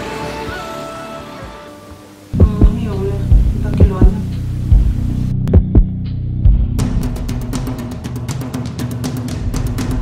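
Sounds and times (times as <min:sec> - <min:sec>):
heartbeat thumps: 0:02.4 - 0:07.0.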